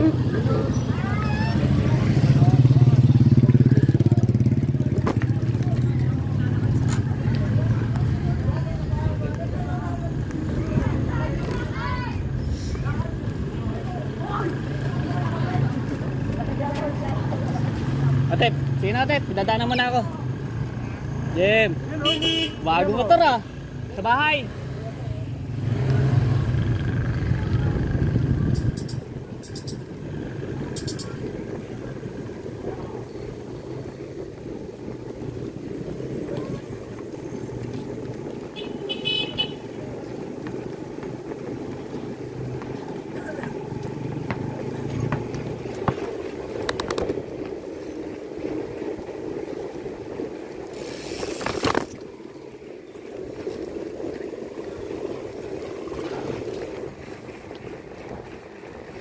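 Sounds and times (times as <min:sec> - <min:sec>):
motor vehicle engine: 0:00.0 - 0:59.0
wind and tyre rush: 0:00.0 - 0:59.0.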